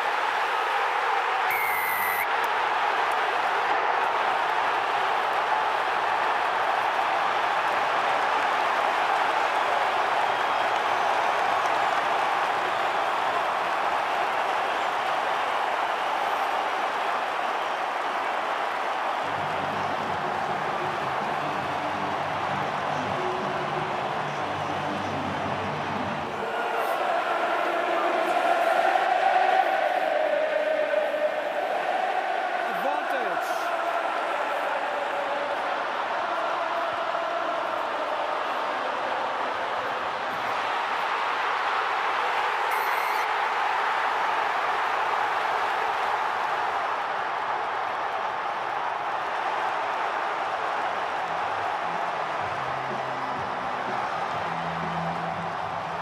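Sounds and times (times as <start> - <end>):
crowd chanting: 0.0 - 56.0
stadium crowd cheering: 0.0 - 56.0.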